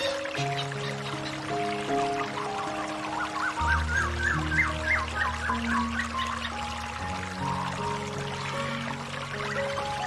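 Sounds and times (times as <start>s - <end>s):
soft instrumental music: 0.0s - 10.0s
stream pouring over rocks: 0.0s - 10.0s.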